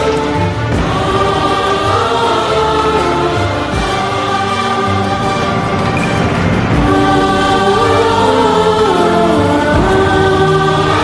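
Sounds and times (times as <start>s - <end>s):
orchestral music with choir voices: 0.0s - 11.0s.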